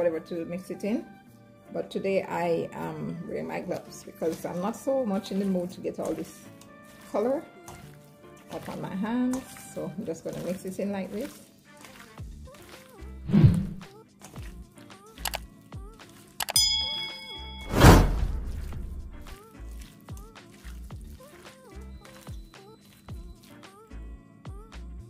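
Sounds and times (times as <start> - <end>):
background music with steady beat: 0.0 - 25.0
raw chicken mixed by hand: 2.8 - 13.2, 13.8 - 17.5, 19.3 - 24.0
steel bowl knocking and ringing: 16.5 - 17.7.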